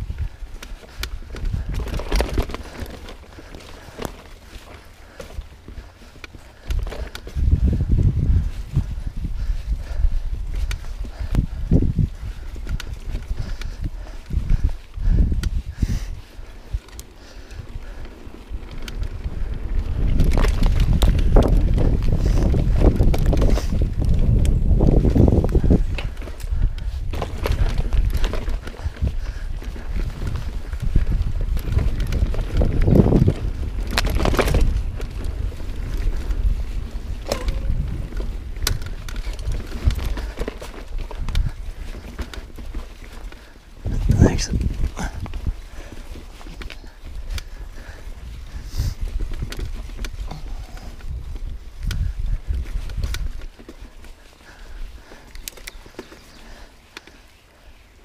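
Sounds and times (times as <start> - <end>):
bike tyres crunching on dirt: 0.0 - 58.0
wind rumble on microphone: 0.0 - 58.0
bike clattering and knocking: 0.6 - 7.9, 37.1 - 42.8.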